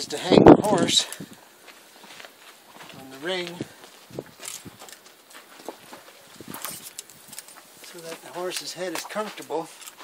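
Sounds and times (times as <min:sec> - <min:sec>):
horse hooves shifting on dirt: 0:00.1 - 0:10.0.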